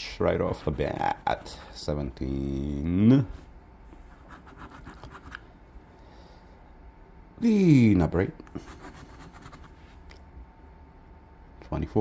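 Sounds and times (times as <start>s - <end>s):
coin scratching a ticket: 4.2s - 5.4s, 8.6s - 9.7s.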